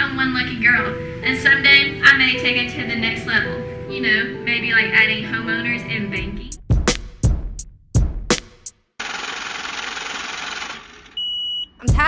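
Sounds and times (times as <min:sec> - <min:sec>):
drum hits in backing music: 0:06.4 - 0:08.7
short high-pitched beep: 0:11.2 - 0:11.8.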